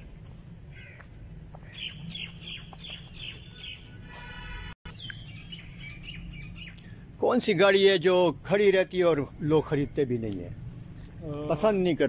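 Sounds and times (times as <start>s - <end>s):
birds chirping and calling: 0.7s - 7.2s.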